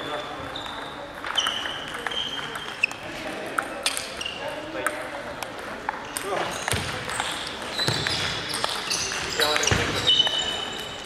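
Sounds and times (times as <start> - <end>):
shoes squeaking on floor: 0.0 - 4.7, 6.0 - 11.0
table tennis balls clicking: 0.6 - 4.2, 4.8 - 9.7.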